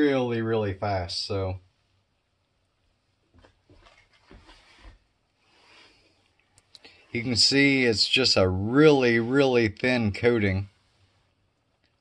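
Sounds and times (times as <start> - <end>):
soft knocks and rustles: 3.3 - 5.1.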